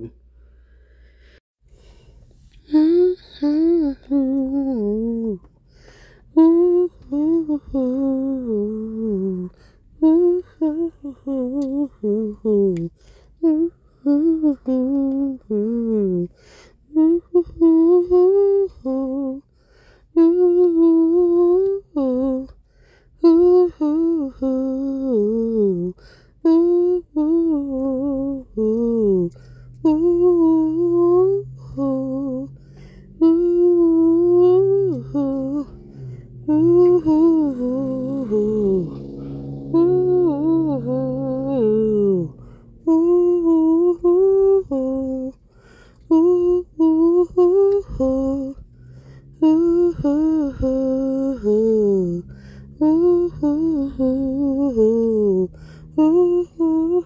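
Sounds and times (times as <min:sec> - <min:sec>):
woman humming: 0:02.7 - 0:05.4, 0:23.3 - 0:45.4.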